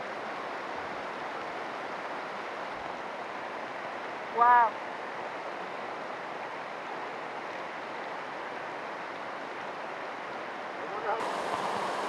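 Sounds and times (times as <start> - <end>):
floodwater rushing: 8.5 - 12.0.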